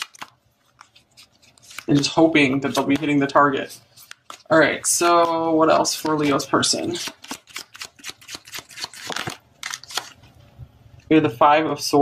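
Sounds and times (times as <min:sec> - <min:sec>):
cards being shuffled: 0:00.0 - 0:10.4.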